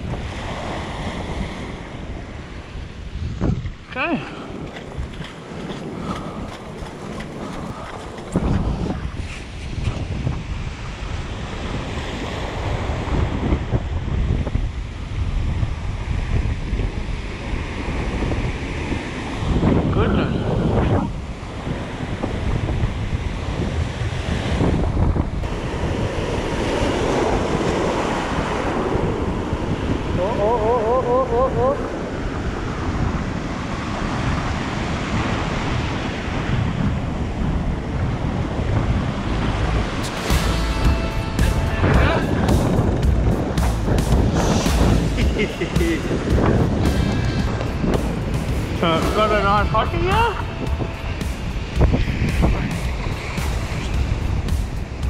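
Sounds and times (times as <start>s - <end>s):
wind buffeting microphone: 0.0s - 55.0s
surf breaking on rocks: 38.7s - 55.0s.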